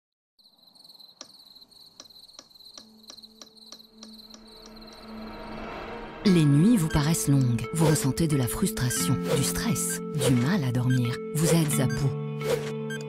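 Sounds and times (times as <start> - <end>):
crickets chirping: 0.4 - 6.1.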